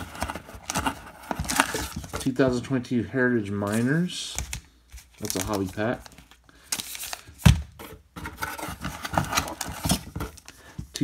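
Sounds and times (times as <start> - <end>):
foil packs crinkling: 5.0 - 7.5.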